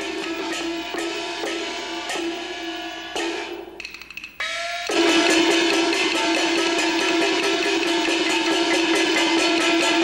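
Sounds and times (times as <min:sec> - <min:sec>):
opera percussion band: 0:00.0 - 0:10.0
small cymbals pattering: 0:00.0 - 0:10.0.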